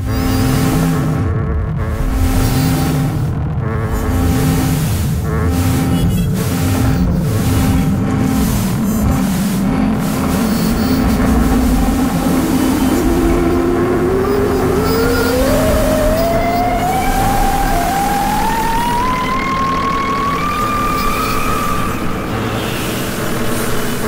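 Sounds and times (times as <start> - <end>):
low noise drone: 0.0 - 24.0
tone gliding upward: 3.9 - 22.5.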